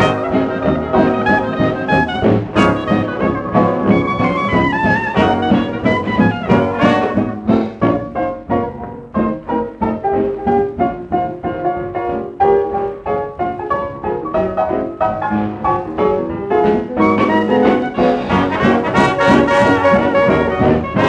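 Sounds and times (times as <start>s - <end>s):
jazz dance band with brass: 0.0s - 21.0s.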